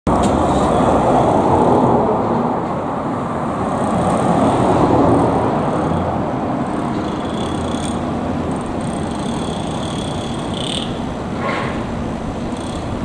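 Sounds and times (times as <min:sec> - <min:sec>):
cars passing: 0:00.1 - 0:13.0.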